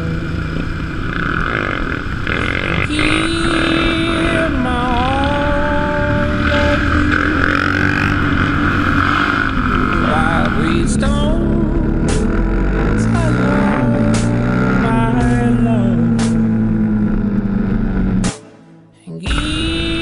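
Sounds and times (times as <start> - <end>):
motorcycle engine accelerating: 0.0 - 18.7.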